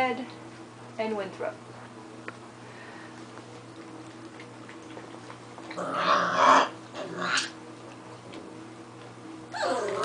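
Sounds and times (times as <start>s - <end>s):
puppies vocalising: 9.5s - 10.0s.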